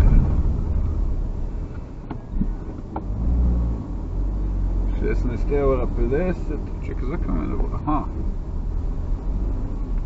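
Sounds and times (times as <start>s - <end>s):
engine and tyre rumble: 0.0s - 10.0s.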